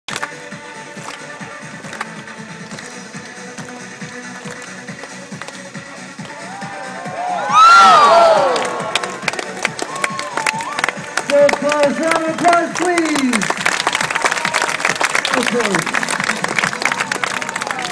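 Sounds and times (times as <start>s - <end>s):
background music with beat: 0.1s - 17.9s
audience whooping cheers: 6.4s - 9.2s, 9.8s - 10.9s, 13.8s - 17.9s.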